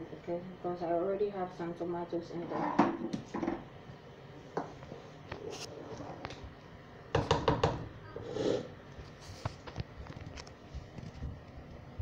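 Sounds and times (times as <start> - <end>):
kitchen knocks and clatters: 2.4 - 3.7, 7.1 - 8.0.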